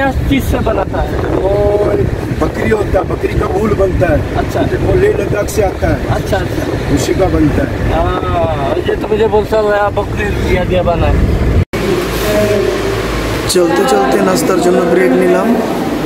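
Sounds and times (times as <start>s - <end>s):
man talking: 0.0s - 11.2s, 12.2s - 15.8s
voices: 0.0s - 11.2s, 11.8s - 16.0s
car engine and tyre rumble: 0.0s - 13.5s
low hum: 9.3s - 16.0s.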